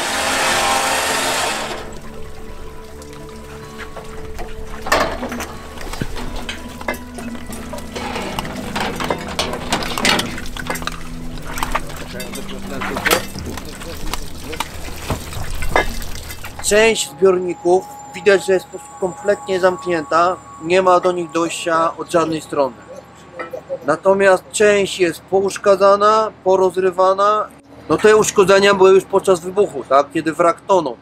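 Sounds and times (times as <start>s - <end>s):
water pouring onto metal platform: 0.0s - 16.8s
background music with held notes: 0.0s - 24.8s
indistinct voices: 0.0s - 24.8s.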